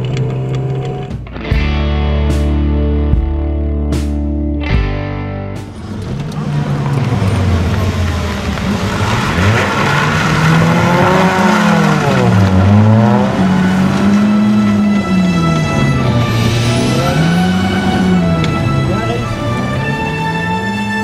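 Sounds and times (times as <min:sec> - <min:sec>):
rally car engine accelerating: 0:00.0 - 0:02.9, 0:04.8 - 0:21.0
tyre and road noise: 0:00.0 - 0:21.0
music: 0:00.1 - 0:06.3, 0:13.7 - 0:21.0.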